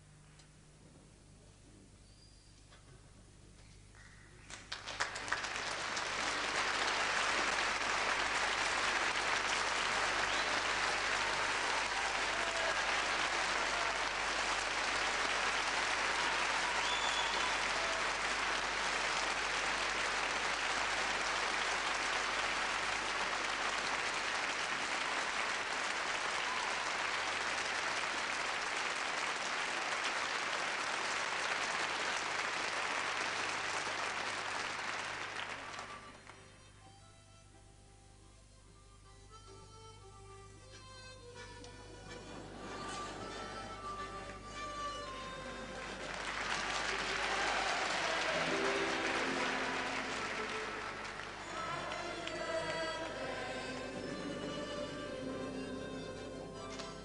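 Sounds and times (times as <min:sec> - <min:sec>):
audience applauding: 0:04.0 - 0:36.6, 0:42.1 - 0:55.3.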